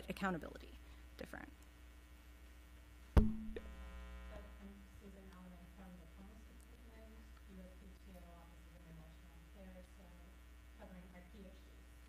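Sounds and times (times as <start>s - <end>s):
electrical hum: 0.0s - 12.0s
hand knocking table microphone: 3.2s - 3.7s
low ringing tone: 3.2s - 4.3s.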